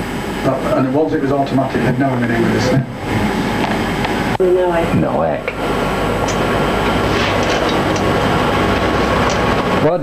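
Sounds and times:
office machines clattering: 0:06.4 - 0:10.0.

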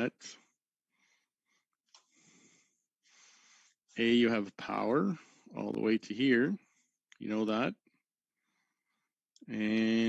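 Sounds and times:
man speaking: 0:00.0 - 0:00.5, 0:04.0 - 0:06.6, 0:07.2 - 0:07.8, 0:09.4 - 0:10.0
man breathing faintly: 0:00.2 - 0:04.0, 0:05.1 - 0:05.6, 0:06.6 - 0:07.0, 0:08.3 - 0:09.2.

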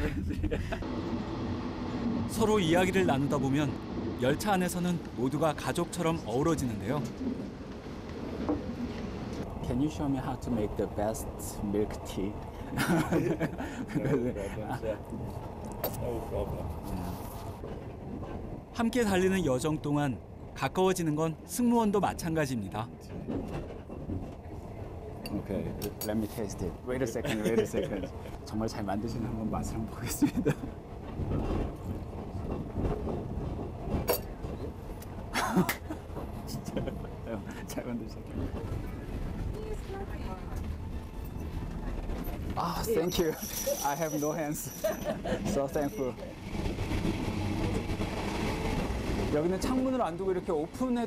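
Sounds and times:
passenger train rumbling: 0:00.0 - 0:51.0.

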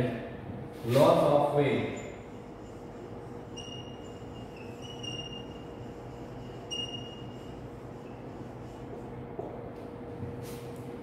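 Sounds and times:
faint steady hum: 0:01.6 - 0:11.0
marker squeaking on whiteboard: 0:02.0 - 0:09.2.

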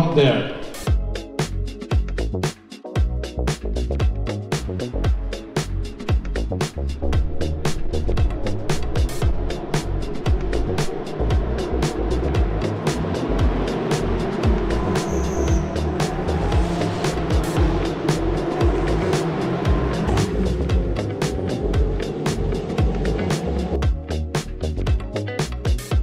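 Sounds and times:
background music with steady beat: 0:00.0 - 0:26.0
race car engines: 0:07.4 - 0:23.8.

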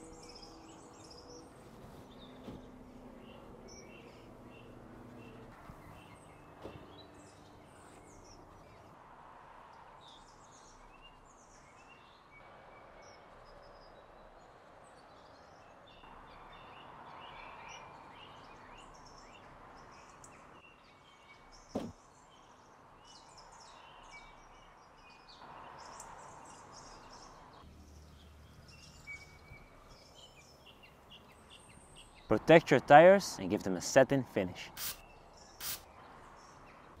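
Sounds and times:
small birds chirping: 0:00.0 - 0:09.0, 0:10.0 - 0:37.0.

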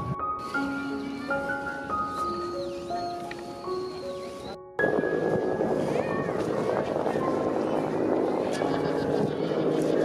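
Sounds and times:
crowd chatter: 0:00.4 - 0:10.0.

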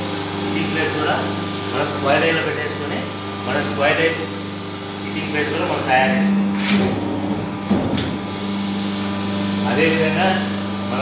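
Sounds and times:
machine humming: 0:00.0 - 0:11.0.

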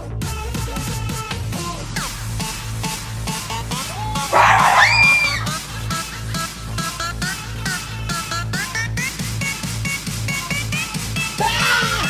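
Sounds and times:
electronic dance music: 0:00.3 - 0:12.0
person screaming: 0:04.4 - 0:05.5.

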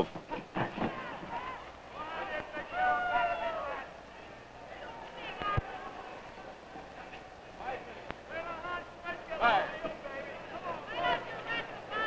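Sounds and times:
faint arena crowd noise: 0:00.0 - 0:12.0.

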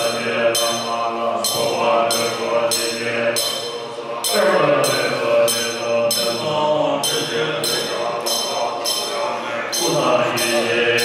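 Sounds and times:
bright metallic ringing: 0:00.0 - 0:11.0
group chanting in unison: 0:00.0 - 0:11.0.

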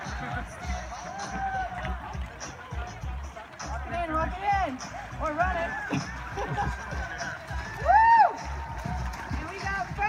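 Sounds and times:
background music: 0:00.0 - 0:10.0
people talking: 0:09.3 - 0:10.0.

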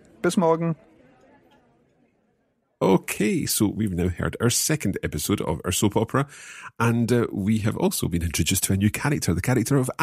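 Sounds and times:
faint background noise: 0:00.0 - 0:10.0
man speaking: 0:02.8 - 0:10.0.

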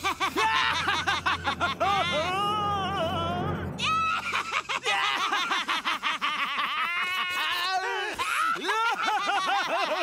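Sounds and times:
cartoon character goofy laugh: 0:00.0 - 0:02.7, 0:03.8 - 0:10.0.

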